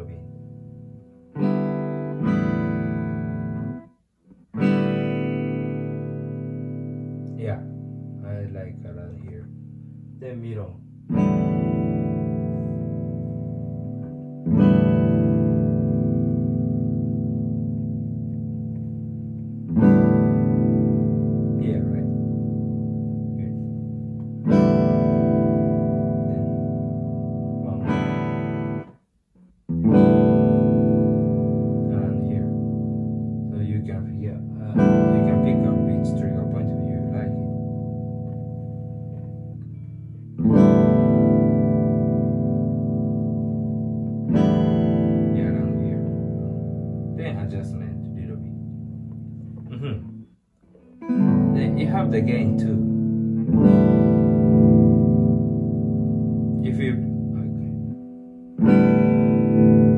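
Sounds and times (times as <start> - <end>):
clean electric guitar chord strummed: 0.0 - 3.9, 10.7 - 28.9, 29.7 - 50.3, 50.9 - 59.9.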